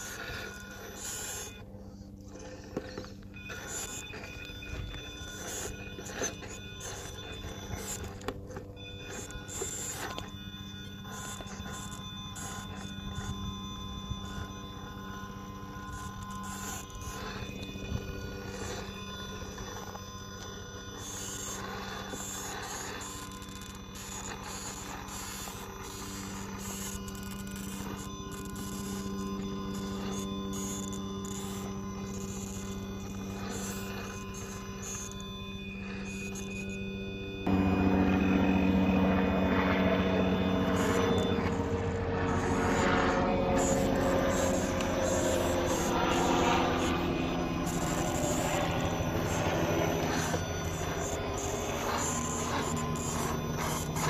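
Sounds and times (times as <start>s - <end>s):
electric motors whining: 0.0s - 54.0s.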